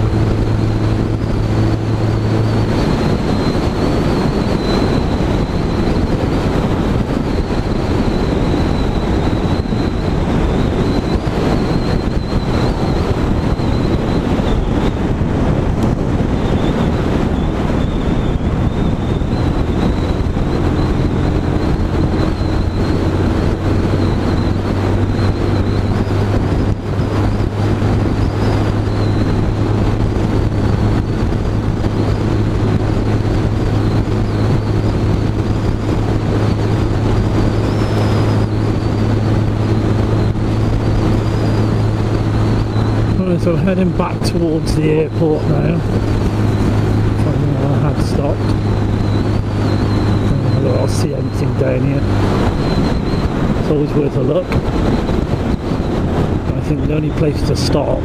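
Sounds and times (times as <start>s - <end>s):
motorcycle engine cruising: 0.0s - 58.0s
wind rushing on microphone: 0.0s - 58.0s.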